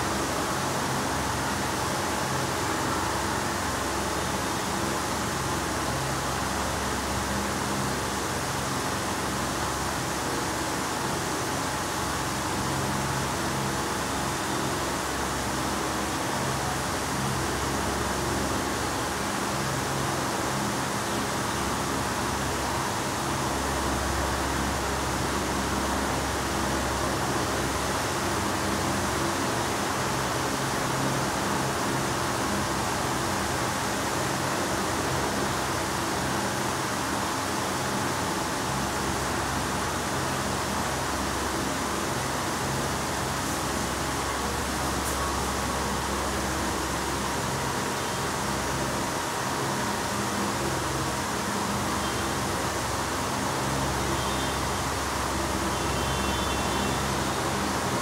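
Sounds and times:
room noise hiss: 0.0s - 58.0s.

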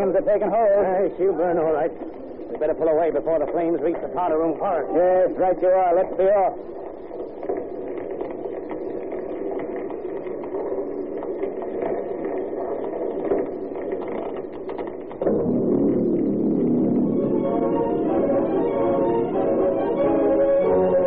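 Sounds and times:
crackle of flames: 0.0s - 21.0s
music bridge: 14.4s - 21.0s.

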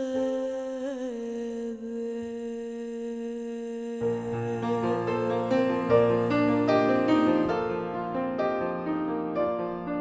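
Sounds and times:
woman singing a sustained note: 0.0s - 7.8s.

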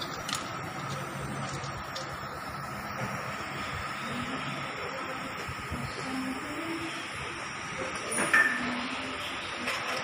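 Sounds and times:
mechanical drone with thin whine: 0.0s - 10.0s.

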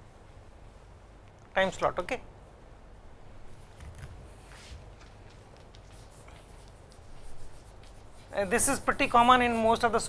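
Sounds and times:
chalk scratching on blackboard: 5.8s - 8.9s.

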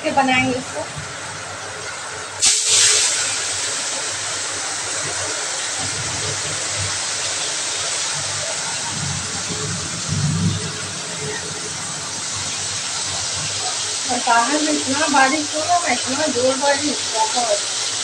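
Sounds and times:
prawns sizzling in hot oil: 0.0s - 18.0s.

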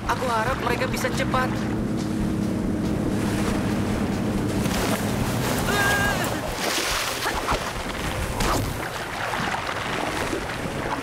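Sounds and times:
motorboat engine hum: 0.0s - 11.0s
wind and sea waves: 0.0s - 11.0s.

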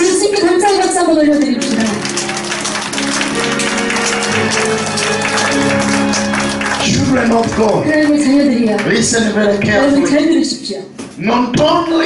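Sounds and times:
congregation applauding: 0.0s - 9.6s
music of held chords: 1.5s - 7.9s.

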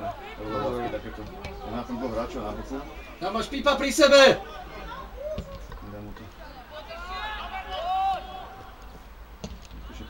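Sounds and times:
men calling out: 0.0s - 8.9s
man shouting: 6.8s - 8.5s.

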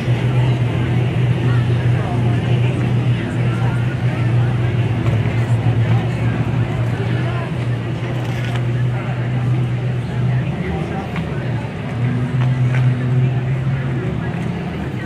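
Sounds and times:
car engine idling: 0.0s - 15.0s
indistinct voices: 0.0s - 15.0s.

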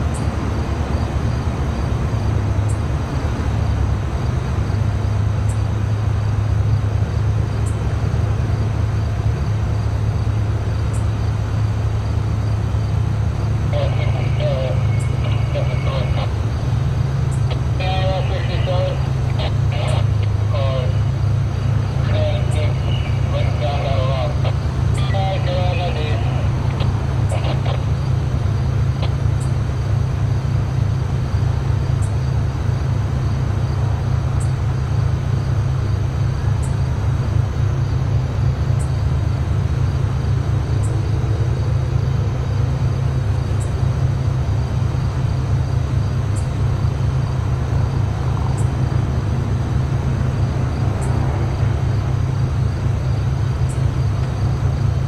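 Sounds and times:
diesel locomotive idling: 0.0s - 55.0s.

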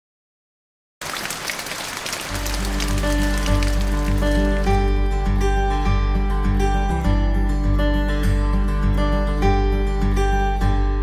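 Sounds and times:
rain pattering: 1.0s - 5.0s.

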